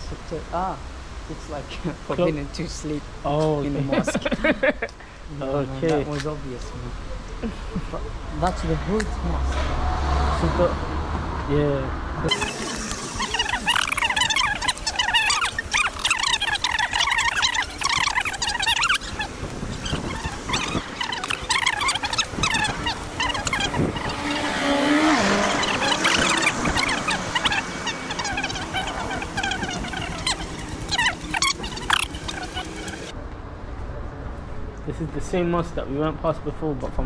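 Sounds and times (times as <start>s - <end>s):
traffic noise: 0.0s - 37.0s
dense chatter of chirps: 12.3s - 24.2s, 25.2s - 33.1s.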